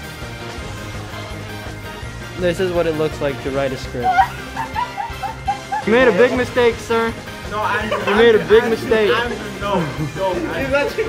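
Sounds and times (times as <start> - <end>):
background music: 0.0 - 11.0
high-pitched yelps: 4.0 - 5.8.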